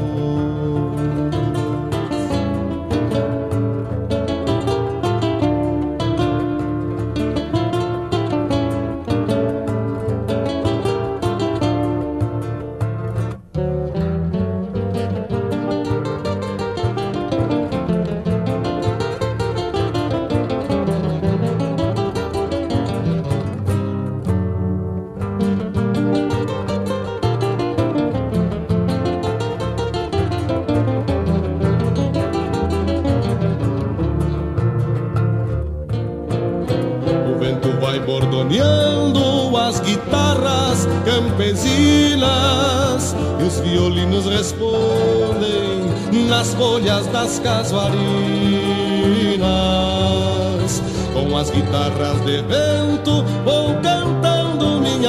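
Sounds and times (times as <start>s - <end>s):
plucked acoustic guitar melody: 0.0s - 55.0s.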